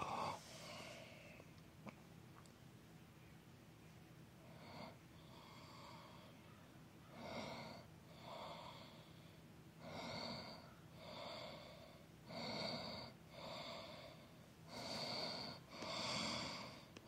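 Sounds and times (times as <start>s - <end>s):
person breathing heavily: 0.0s - 1.4s, 4.4s - 6.5s, 7.2s - 17.0s.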